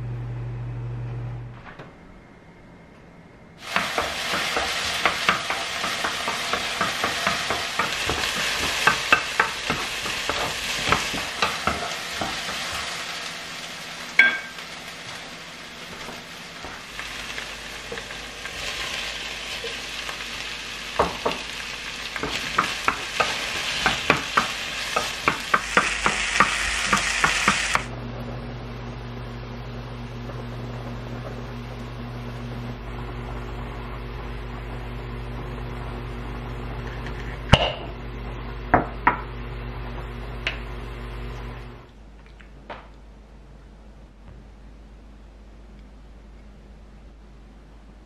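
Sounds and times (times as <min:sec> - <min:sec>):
onion sizzling in a frying pan: 0:03.6 - 0:27.9.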